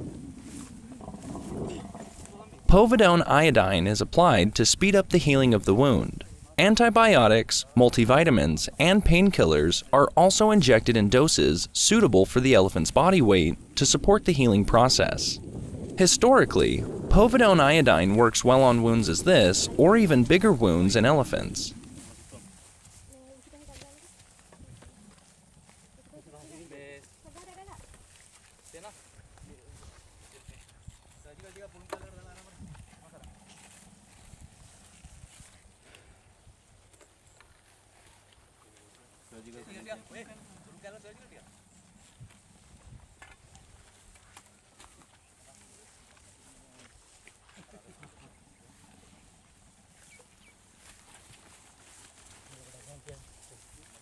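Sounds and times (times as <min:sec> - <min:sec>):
murmured voices: 0:00.9 - 0:15.4, 0:16.0 - 0:22.4
low rumble: 0:14.6 - 0:22.3.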